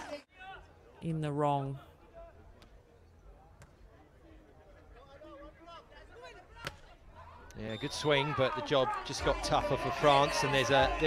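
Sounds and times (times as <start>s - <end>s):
crowd voices: 1.7s - 11.0s
players calling: 5.4s - 11.0s.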